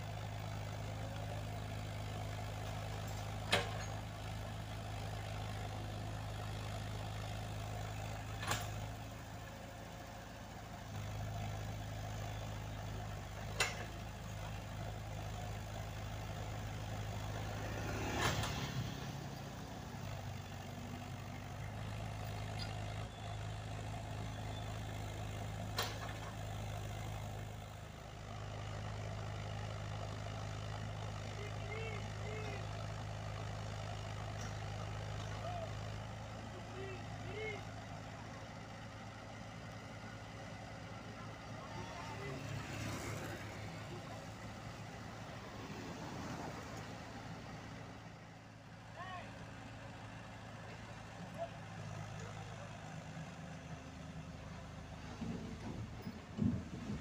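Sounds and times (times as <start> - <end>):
excavator and truck engines humming: 0.0 - 57.0
excavator digging dirt: 8.2 - 9.0, 16.2 - 19.2, 20.0 - 29.4.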